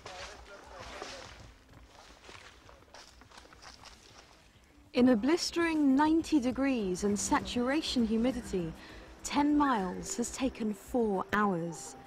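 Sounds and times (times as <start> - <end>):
footsteps on forest trail: 0.0 - 9.2.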